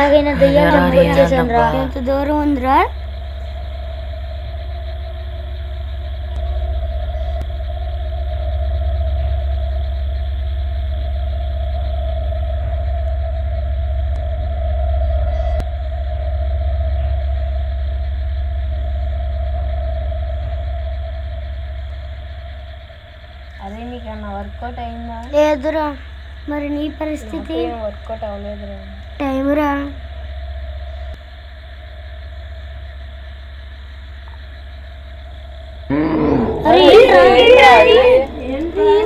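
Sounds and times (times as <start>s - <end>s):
deep rumbling drone: 0.0s - 39.0s.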